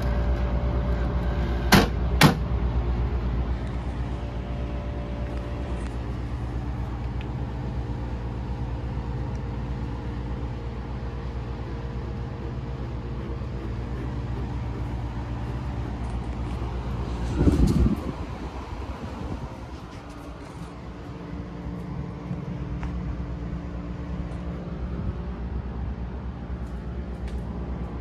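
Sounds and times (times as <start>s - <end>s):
air conditioner humming: 0.0s - 28.0s.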